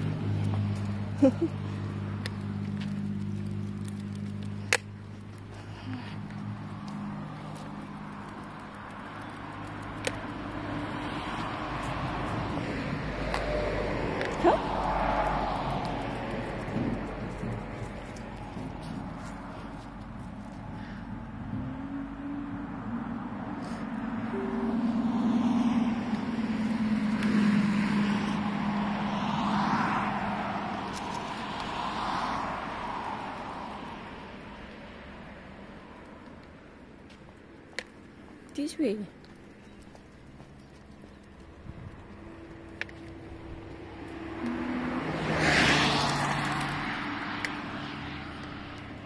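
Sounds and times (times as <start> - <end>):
vehicles passing on road: 0.0 - 49.0.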